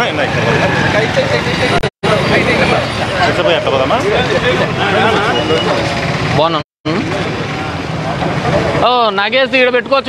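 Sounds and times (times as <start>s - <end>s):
men talking over one another: 0.0s - 10.0s.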